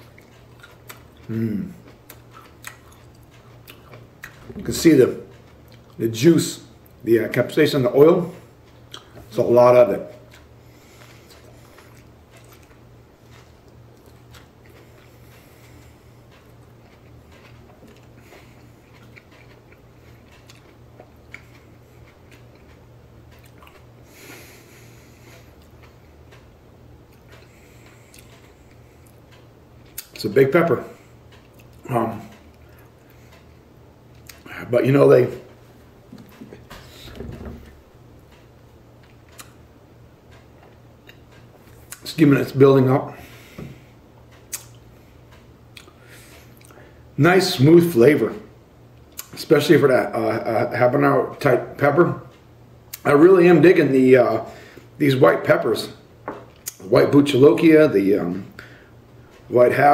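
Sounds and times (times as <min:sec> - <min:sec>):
chewing with wet mouth clicks: 0:00.0 - 0:04.6, 0:05.2 - 0:06.0, 0:08.6 - 0:09.2, 0:10.1 - 0:23.9, 0:27.1 - 0:30.2, 0:31.3 - 0:33.5, 0:38.3 - 0:39.6, 0:44.3 - 0:46.8, 0:56.5 - 0:56.8
steady low hum: 0:00.0 - 0:59.9.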